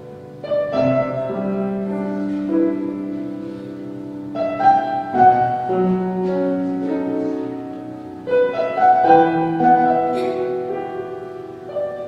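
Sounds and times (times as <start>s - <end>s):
slow piano prelude: 0.0s - 12.0s.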